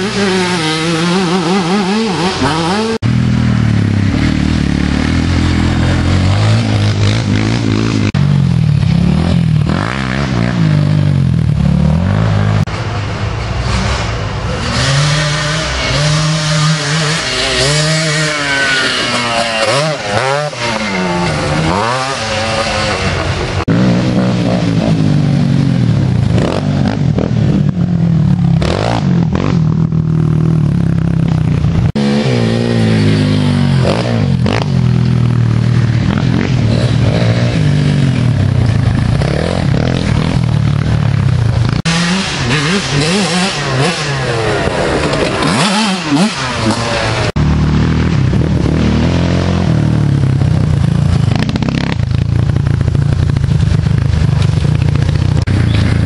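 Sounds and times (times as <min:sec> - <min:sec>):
quad engines running hard: 0:00.0 - 0:56.0.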